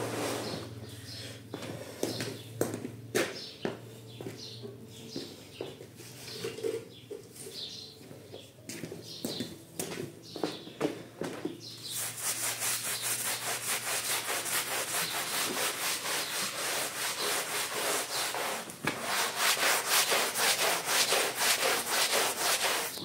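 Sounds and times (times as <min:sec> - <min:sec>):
brush scrubbing wet rug: 0:11.8 - 0:23.0.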